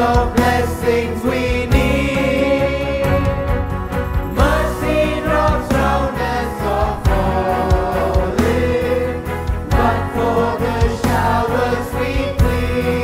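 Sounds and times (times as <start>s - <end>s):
group singing praise song: 0.0s - 3.6s, 4.3s - 13.0s
instrumental accompaniment: 0.0s - 13.0s.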